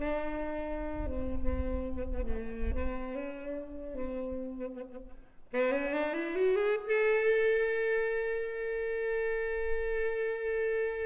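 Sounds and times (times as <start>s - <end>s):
wind instrument long note: 0.0s - 11.0s.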